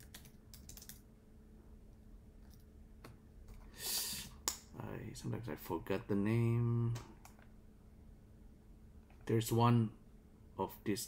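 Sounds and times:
faint keyboard typing: 0:00.0 - 0:01.0, 0:02.4 - 0:02.7.

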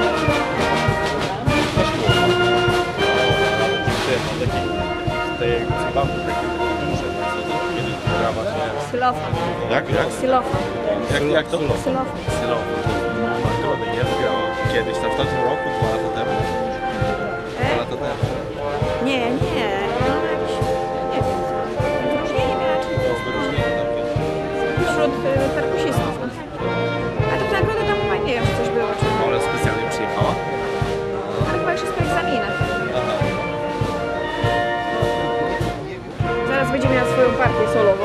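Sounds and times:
steady low drum beat: 0:00.0 - 0:38.0
wind band playing a march: 0:00.0 - 0:38.0.

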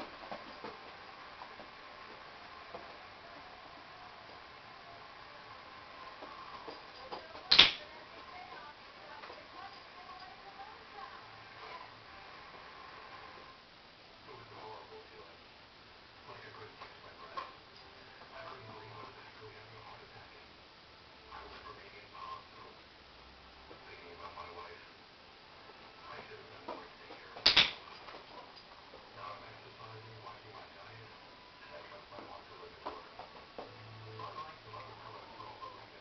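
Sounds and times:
dog training clicker click: 0:27.4 - 0:27.8.

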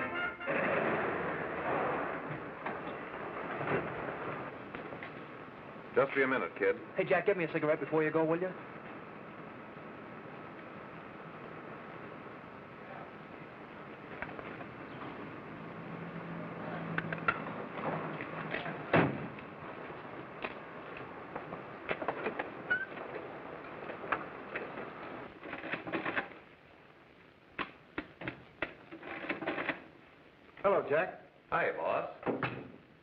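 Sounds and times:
film soundtrack hiss: 0:00.0 - 0:33.0.

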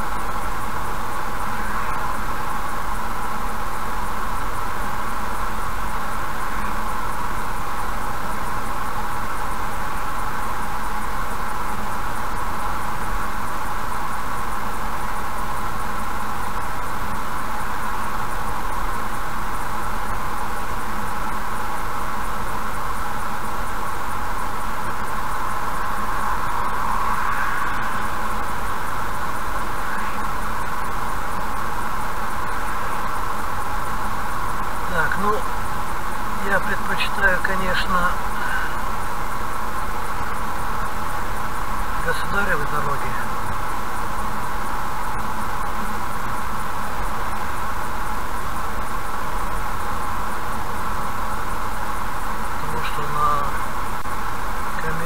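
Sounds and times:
car road and tyre noise: 0:00.0 - 0:55.0.

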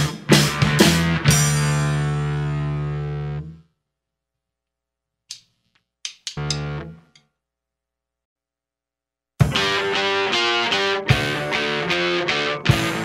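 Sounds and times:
distorted bass chord: 0:00.0 - 0:03.7.

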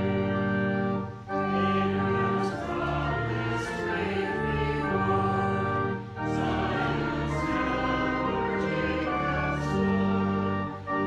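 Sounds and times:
choir singing: 0:00.0 - 0:11.0
organ chords: 0:00.0 - 0:11.0.

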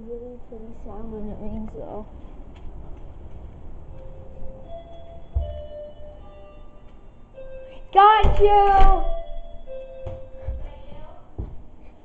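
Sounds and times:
doorbell chime melody: 0:04.0 - 0:10.6.

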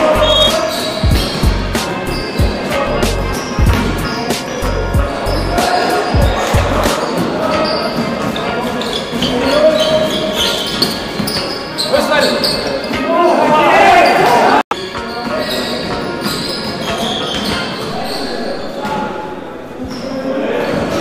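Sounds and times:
players shouting in a hall: 0:00.0 - 0:03.3, 0:11.6 - 0:14.6, 0:16.8 - 0:21.0.

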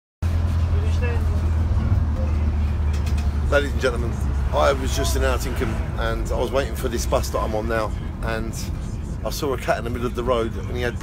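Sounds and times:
bus engine drone: 0:00.2 - 0:11.0
road noise: 0:00.2 - 0:11.0.

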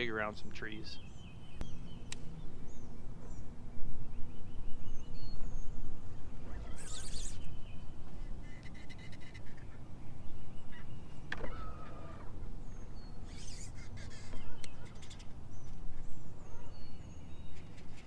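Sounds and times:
bird calls: 0:00.0 - 0:18.0.

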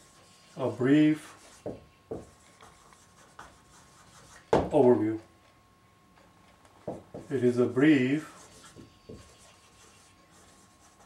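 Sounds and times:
marker writing on a whiteboard: 0:00.0 - 0:04.9, 0:06.8 - 0:11.0.

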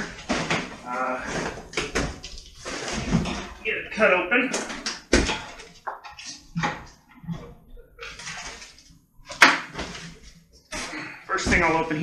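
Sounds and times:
cardboard rustling and scraping: 0:00.0 - 0:03.6, 0:05.3 - 0:12.0.

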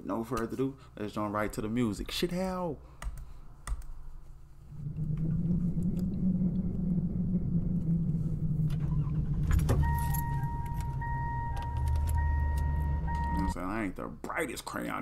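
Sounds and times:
car engine running: 0:04.8 - 0:13.6
car electronic warning chime: 0:09.0 - 0:13.6.

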